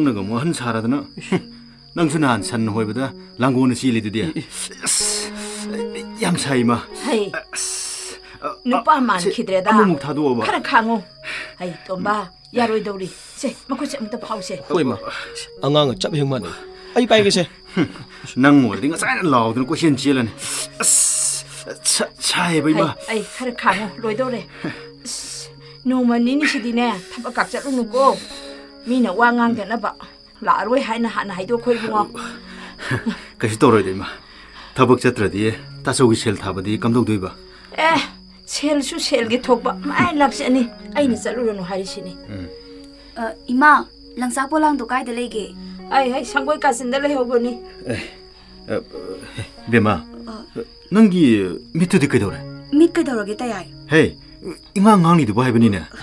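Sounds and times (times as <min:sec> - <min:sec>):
background music: 0:00.0 - 0:56.0
crickets chirring: 0:00.0 - 0:56.0
person speaking: 0:20.5 - 0:25.3, 0:39.6 - 0:42.6.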